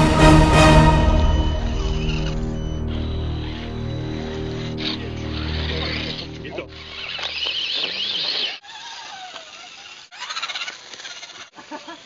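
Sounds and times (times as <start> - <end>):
electric motor and gear whine: 1.3 - 8.0.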